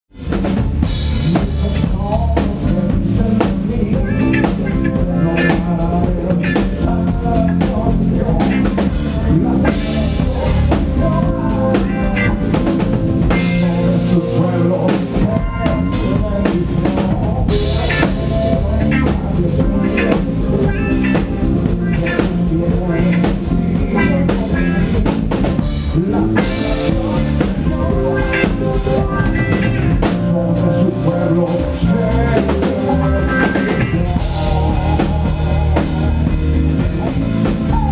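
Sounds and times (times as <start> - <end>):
bass guitar: 0.1 - 37.9
drum kit beat: 0.1 - 37.9
electric guitar: 0.1 - 37.9
live band playing: 0.1 - 37.9.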